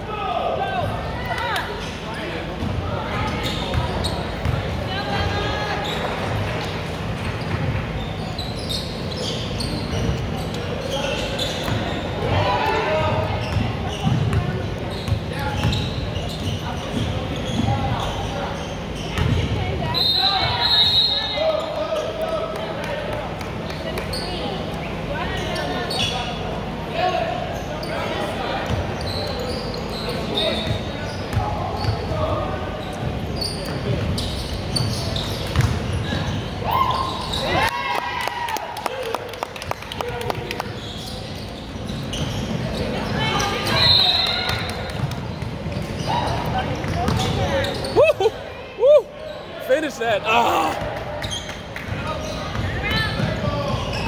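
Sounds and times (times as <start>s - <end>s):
background chatter: 0.0s - 37.8s, 39.0s - 54.0s
sneakers squeaking: 0.1s - 37.9s, 39.0s - 54.0s.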